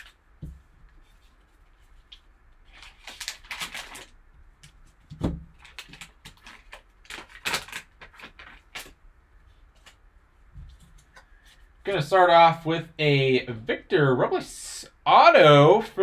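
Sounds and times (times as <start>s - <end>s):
foil wrapper crinkling: 2.0s - 4.2s, 5.6s - 9.0s.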